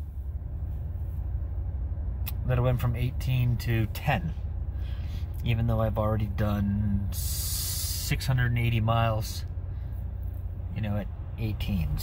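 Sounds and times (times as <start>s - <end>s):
engine idling low rumble: 0.0s - 12.0s.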